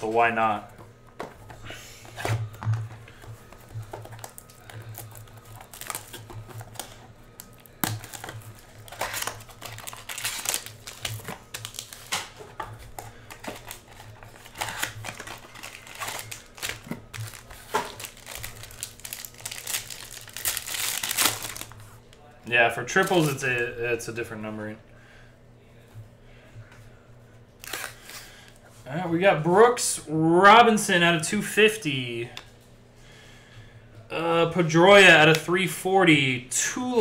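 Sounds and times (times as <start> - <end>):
foil wrapper crinkling: 3.1 - 21.9, 22.9 - 23.4, 27.6 - 28.4.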